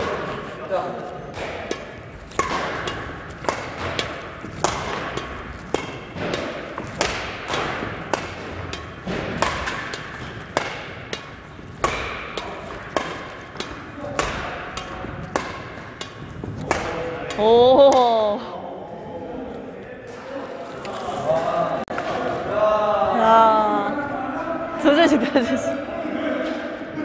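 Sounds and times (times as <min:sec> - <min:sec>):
rackets hitting shuttlecock: 0:01.2 - 0:18.3.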